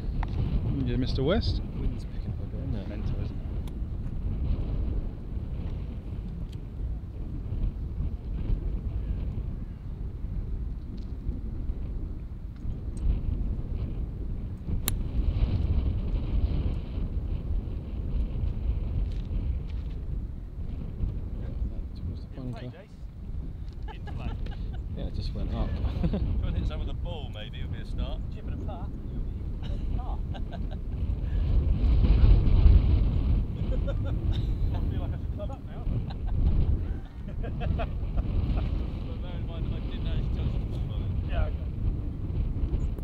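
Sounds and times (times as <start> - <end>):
wind buffeting microphone: 0.0 - 43.0
golf club striking ball: 14.8 - 15.1.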